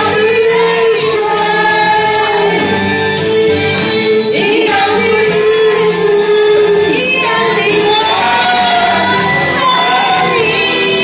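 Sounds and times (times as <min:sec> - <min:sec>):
backing music: 0:00.0 - 0:11.0
group singing into microphones: 0:00.0 - 0:11.0.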